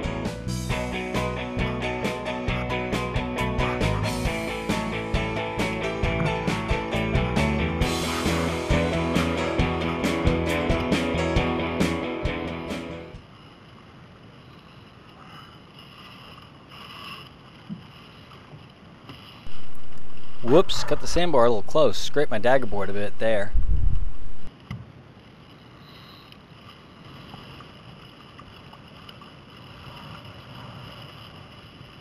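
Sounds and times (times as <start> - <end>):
rock music with guitar: 0.0 - 13.2
water noise from sailing: 13.1 - 32.0
wind noise: 19.4 - 24.5.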